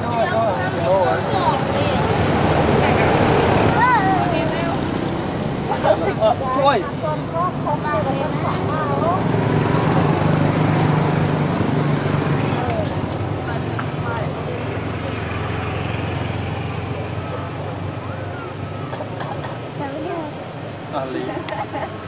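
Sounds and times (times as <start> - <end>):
faint voices: 11.2 - 22.0.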